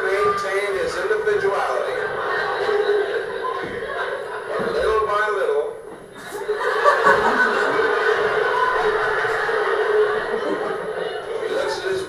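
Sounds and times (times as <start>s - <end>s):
voices over speakers: 0.0s - 12.0s
laughter and chuckling: 1.9s - 4.8s, 6.1s - 12.0s.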